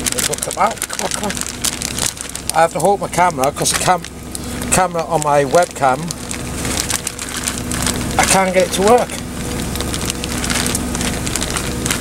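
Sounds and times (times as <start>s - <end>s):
cheese shaken from plastic bag: 0.0s - 4.1s, 9.8s - 12.0s.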